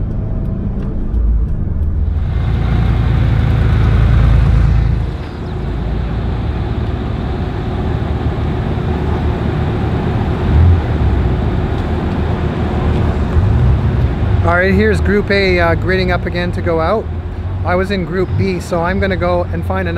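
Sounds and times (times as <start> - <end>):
car engine and road noise in cabin: 0.0 - 19.9
sports car engines outdoors: 0.0 - 19.9.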